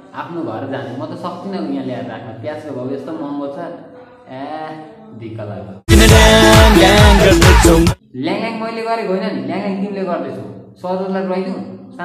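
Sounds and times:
loud music with sliding bass: 5.9s - 8.0s
man speaking: 6.7s - 12.0s.

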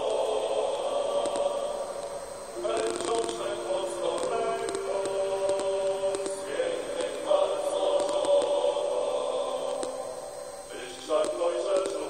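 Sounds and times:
choir holding long notes: 0.0s - 12.0s.

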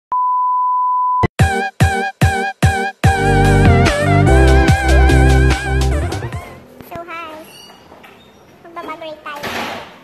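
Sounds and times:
music with short repeating notes: 1.4s - 6.6s.

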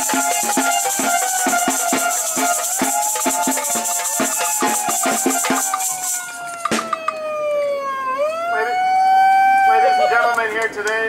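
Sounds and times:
siren wailing: 0.0s - 10.7s.

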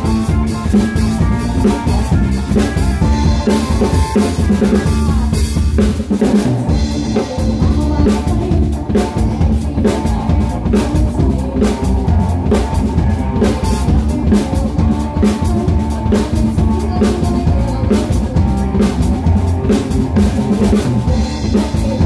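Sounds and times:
drum kit beat: 0.0s - 22.0s
live band playing: 0.0s - 22.0s.

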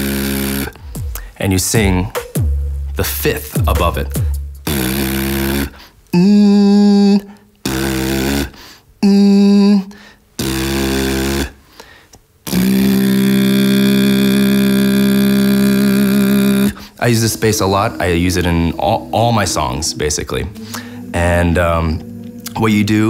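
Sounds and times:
buzzing lip bass with sung note: 0.0s - 9.8s, 10.4s - 11.6s, 12.5s - 23.0s.

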